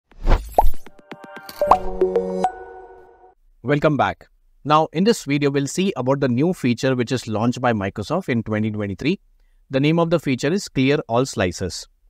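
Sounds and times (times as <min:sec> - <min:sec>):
bright synth chord ringing: 0:01.0 - 0:03.4.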